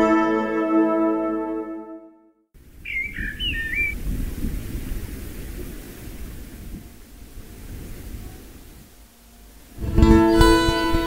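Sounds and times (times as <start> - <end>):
bird call: 2.8 - 4.0.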